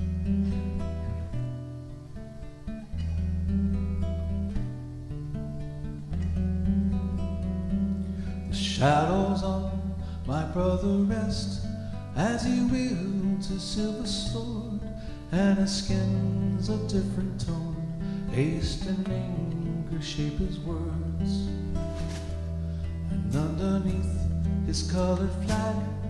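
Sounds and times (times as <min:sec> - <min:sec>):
acoustic guitar strumming: 0:00.0 - 0:26.0
electric guitar playing: 0:00.0 - 0:26.0.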